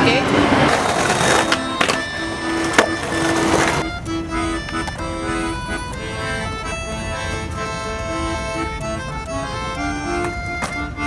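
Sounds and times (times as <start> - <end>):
skateboard wheels rolling on concrete: 0.0 - 5.8, 9.8 - 11.0
skateboard clack: 0.0 - 6.4, 9.8 - 11.0.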